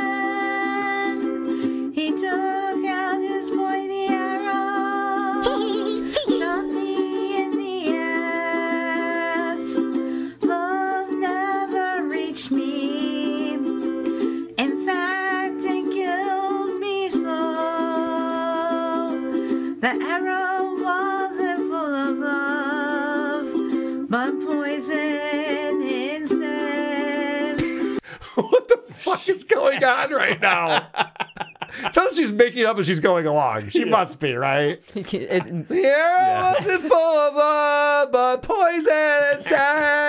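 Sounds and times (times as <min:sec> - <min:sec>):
strummed electric ukulele: 0:00.0 - 0:27.6
woman singing with vibrato: 0:00.0 - 0:27.8.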